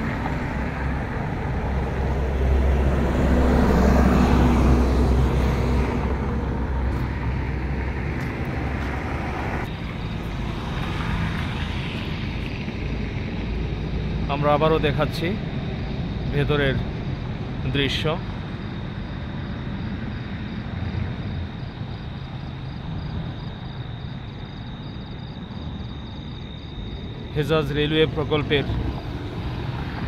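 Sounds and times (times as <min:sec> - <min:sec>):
passing vehicle rumble: 0:00.0 - 0:30.0
road traffic noise: 0:00.0 - 0:30.0.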